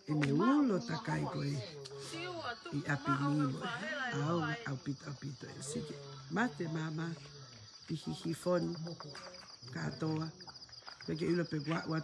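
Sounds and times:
crickets trilling: 0.0s - 12.0s
woman speaking: 0.4s - 4.7s.

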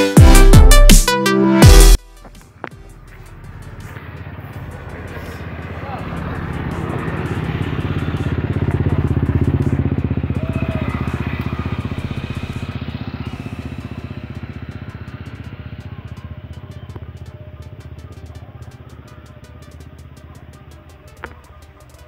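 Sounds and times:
motorcycle engine passing by: 2.4s - 22.0s.

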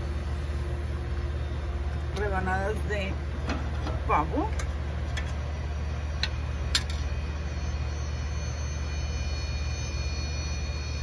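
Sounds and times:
faint high whine: 0.0s - 11.0s
steady low hum: 0.0s - 11.0s.

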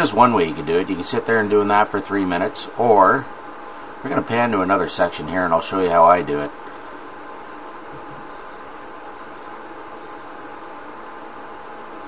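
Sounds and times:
faint even hum: 0.0s - 12.0s
steady hiss: 0.0s - 12.0s.

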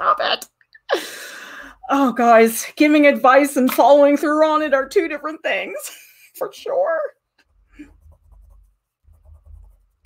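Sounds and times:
drawing tool scratching paper: 7.5s - 10.0s.

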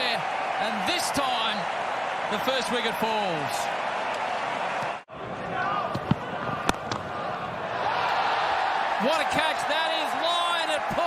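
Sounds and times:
crowd noise on broadcast: 0.0s - 11.0s.

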